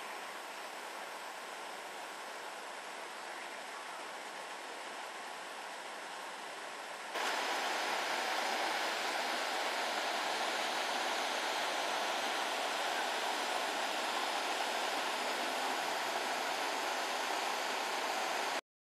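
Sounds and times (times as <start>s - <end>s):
stream rushing over rocks: 0.0s - 18.6s.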